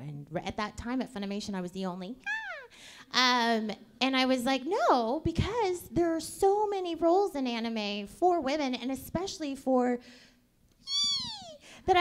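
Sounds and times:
high-pitched meow-like call: 2.3 - 2.7, 10.8 - 11.6.

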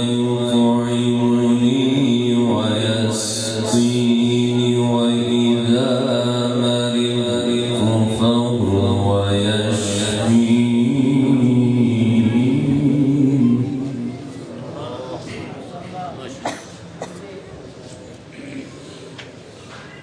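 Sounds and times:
man reciting melodically: 0.0 - 15.2.

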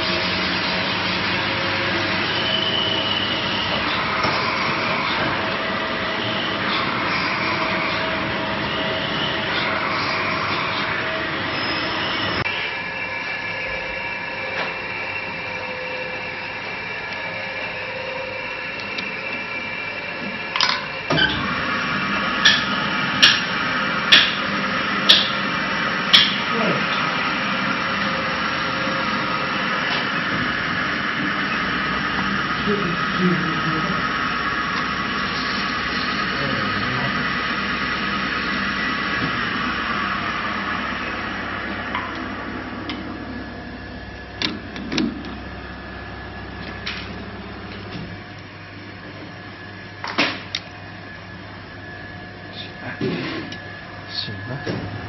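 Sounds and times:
steady mechanical hum: 0.0 - 55.0.

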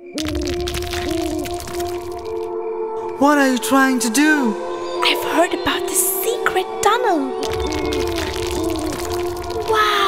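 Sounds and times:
dense crackle of clicks: 0.0 - 2.6, 7.4 - 9.8.

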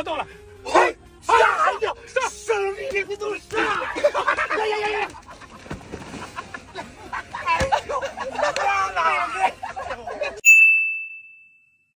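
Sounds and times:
high bell-like ding: 10.4 - 11.9.

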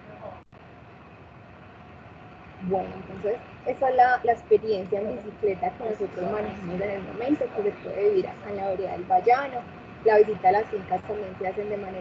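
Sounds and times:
microphone hiss and hum: 0.0 - 12.0.

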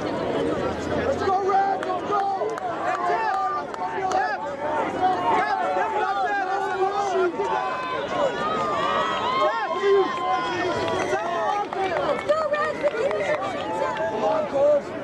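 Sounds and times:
people shouting over one another: 3.0 - 11.6.

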